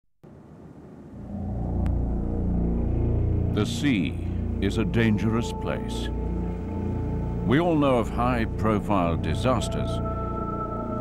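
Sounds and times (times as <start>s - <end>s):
low rumbling drone: 0.2s - 11.0s.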